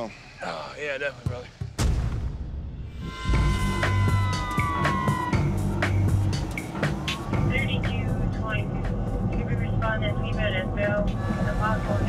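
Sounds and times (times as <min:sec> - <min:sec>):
police siren wailing: 0:03.2 - 0:07.9
music with steady beat: 0:03.3 - 0:10.0.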